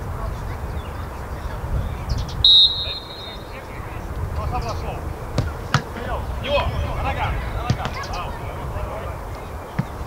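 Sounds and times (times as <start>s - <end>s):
referee's whistle blast: 2.4s - 3.8s
faint distant shouting: 2.5s - 4.1s.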